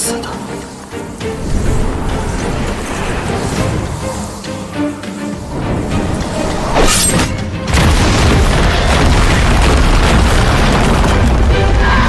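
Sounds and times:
dramatic score music: 0.0s - 12.0s
deep magical blast explosion: 7.6s - 11.9s.

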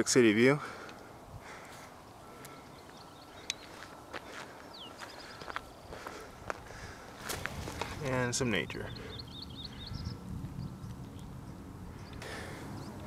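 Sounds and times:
footsteps crunching on a trail: 1.5s - 8.3s.

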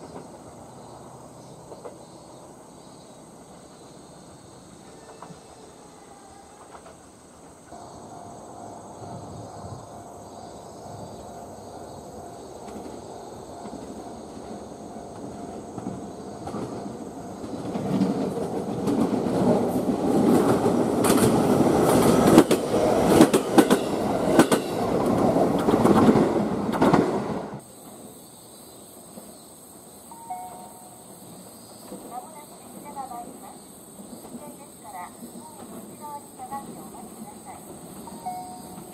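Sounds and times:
electric train running: 4.5s - 28.1s, 34.0s - 38.9s
train wheels clattering over joints: 12.4s - 28.0s.

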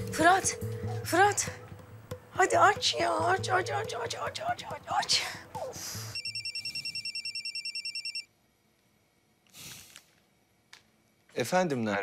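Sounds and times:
phone ringing with warbling trill: 6.2s - 8.3s.

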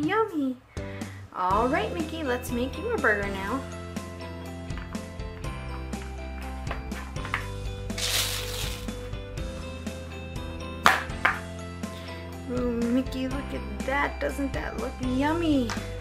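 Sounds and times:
light background music: 0.0s - 16.0s.

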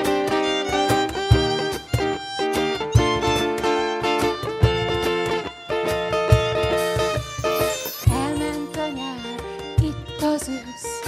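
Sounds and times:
strummed acoustic guitar: 0.0s - 11.0s
violin melody: 0.0s - 11.0s.

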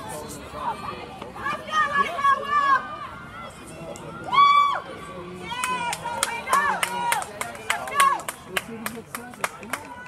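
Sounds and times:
spectators cheering: 4.2s - 8.7s
sharp clapping: 5.6s - 10.0s.

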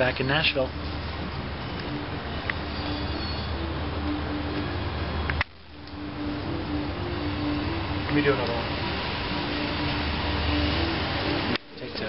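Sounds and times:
faint hum: 0.0s - 12.0s
street rumble: 0.0s - 12.0s.

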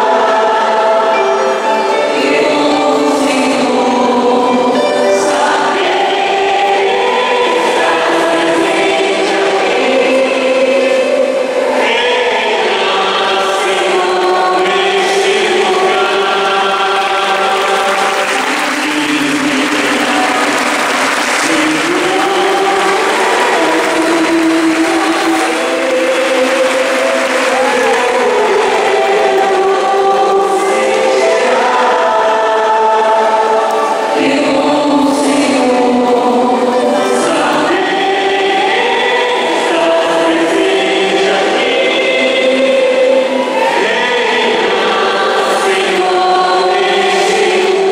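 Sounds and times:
choir singing a hymn: 0.0s - 47.9s.

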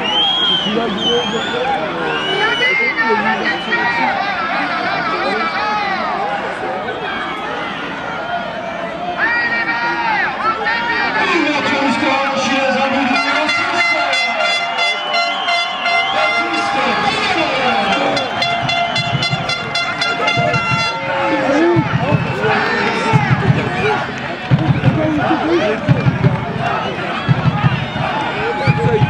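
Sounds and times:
men shouting and calling: 0.7s - 29.0s.

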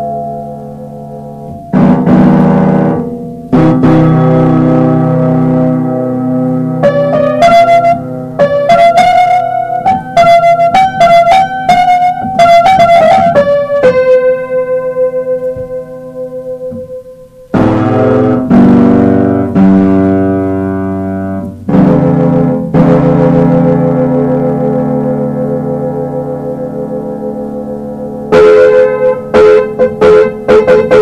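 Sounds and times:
electronic keyboard melody: 0.0s - 31.0s.

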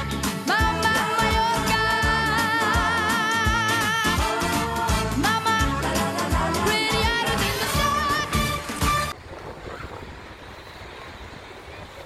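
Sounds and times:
wind rumble on microphone: 6.8s - 12.0s.

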